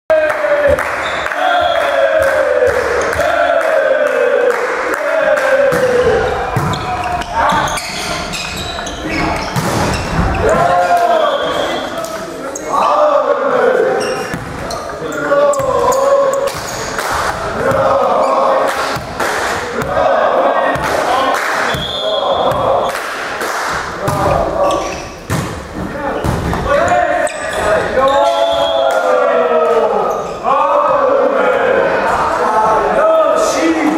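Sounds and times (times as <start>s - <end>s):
players shouting: 0.1s - 23.0s, 25.9s - 33.9s
volleyball thudding: 5.7s - 6.9s, 18.8s - 20.1s, 25.3s - 25.6s.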